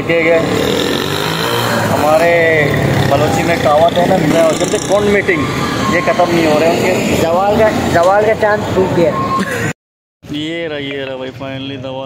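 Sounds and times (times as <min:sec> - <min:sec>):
street traffic noise: 0:00.0 - 0:12.0
man talking: 0:01.9 - 0:09.1.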